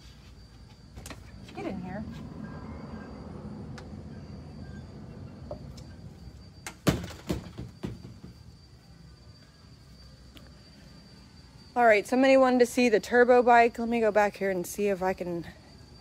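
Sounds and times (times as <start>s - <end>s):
low rumble: 1.2s - 6.6s.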